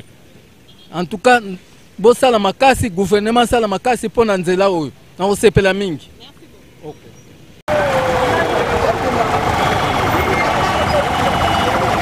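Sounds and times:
busy street traffic: 0.0s - 5.2s, 5.8s - 12.0s
wailing siren tone: 7.7s - 12.0s.

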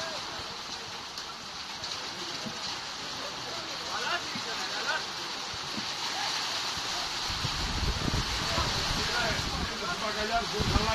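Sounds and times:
hail falling: 0.0s - 10.9s.

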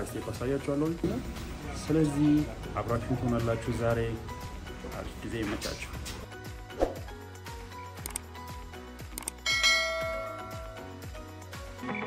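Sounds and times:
music with steady beat: 0.5s - 12.0s
short clicks: 8.0s - 8.3s
bright bell chime: 9.4s - 10.9s.

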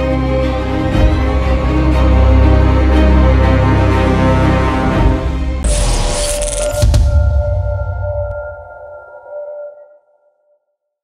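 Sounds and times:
logo hit: 5.6s - 8.7s.

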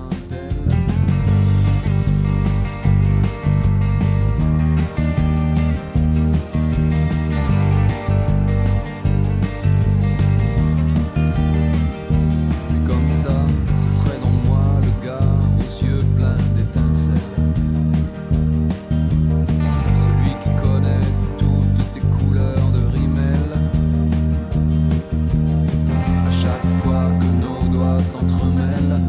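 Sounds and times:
bass guitar played fingerstyle: 0.0s - 29.0s
recorded band backing track: 0.0s - 29.0s.

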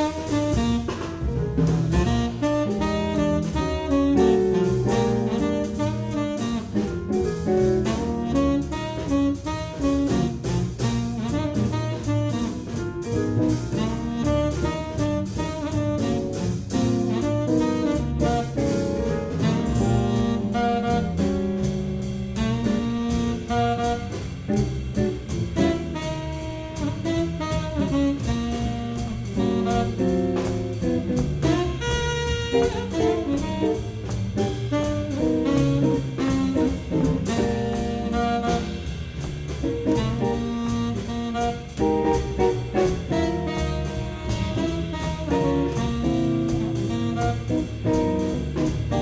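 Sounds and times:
tenor saxophone: 0.0s - 1.3s, 1.9s - 49.0s
double bass: 0.0s - 49.0s
drum kit: 0.0s - 49.0s.

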